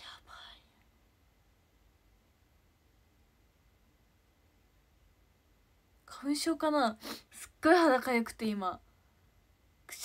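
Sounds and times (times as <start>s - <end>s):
person whispering: 0.0s - 0.8s.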